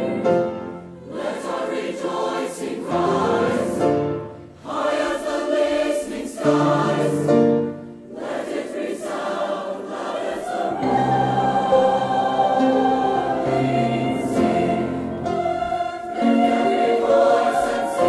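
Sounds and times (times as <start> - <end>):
choir singing in harmony: 0.0 - 18.0.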